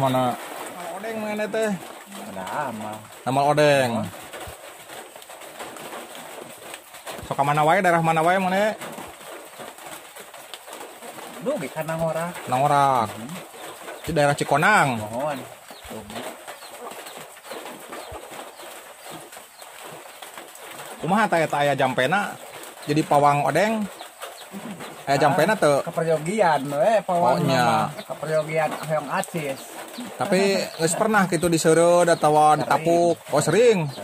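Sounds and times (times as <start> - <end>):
birds calling: 0.0 - 34.0
dove cooing: 24.4 - 25.5, 29.5 - 30.8.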